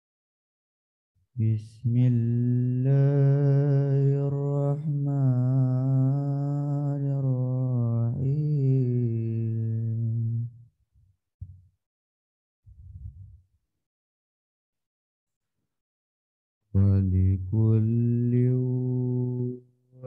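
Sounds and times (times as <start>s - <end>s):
man reciting melodically: 1.4s - 9.9s, 16.8s - 20.0s.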